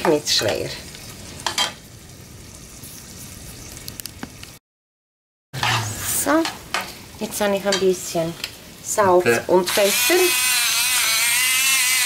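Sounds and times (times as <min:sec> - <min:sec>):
electric pepper mill whining: 0:09.7 - 0:12.0.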